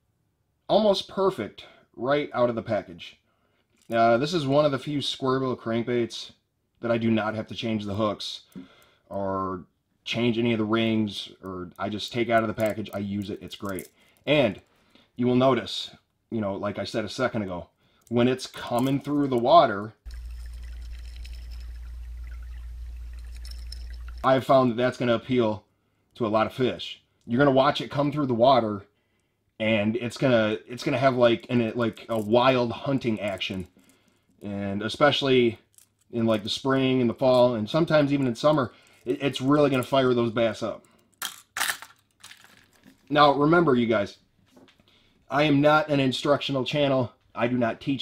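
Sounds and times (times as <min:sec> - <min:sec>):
faint handling noise: 0:11.4 - 0:14.7, 0:31.3 - 0:34.5, 0:35.4 - 0:36.6, 0:40.6 - 0:43.3.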